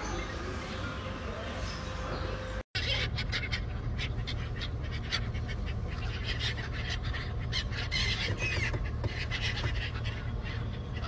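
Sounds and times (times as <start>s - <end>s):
gulls squawking: 1.6s - 11.0s.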